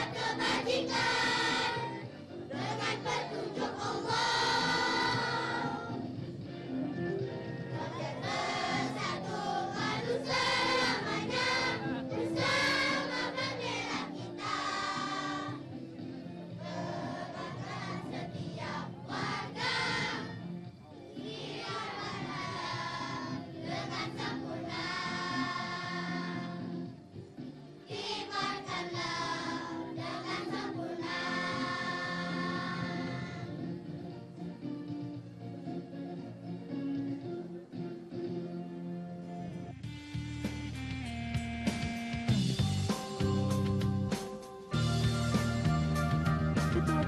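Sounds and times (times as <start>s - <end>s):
children's choir singing: 0.0s - 6.0s, 7.7s - 15.6s, 16.6s - 20.4s, 21.2s - 26.9s, 27.9s - 33.9s
musical accompaniment: 0.0s - 47.0s.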